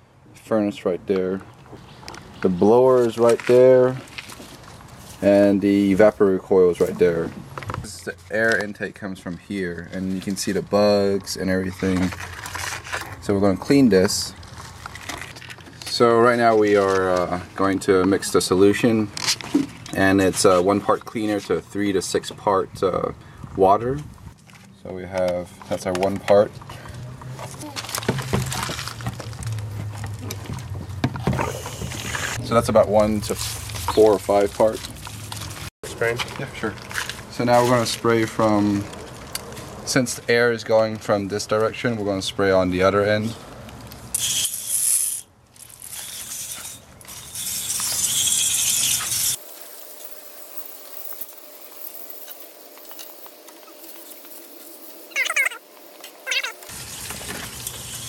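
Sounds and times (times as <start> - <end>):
hose water filling plastic jug: 30.6 - 32.5, 56.6 - 58.0
short high-pitched squeaks: 44.2 - 51.3, 55.0 - 56.7.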